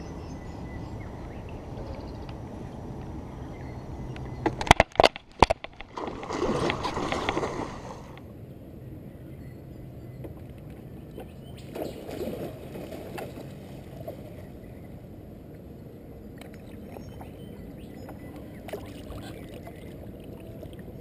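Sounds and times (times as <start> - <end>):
water lapping around kayak: 0.8 - 8.4, 10.2 - 21.0
water splashing: 4.8 - 8.2, 18.6 - 21.0.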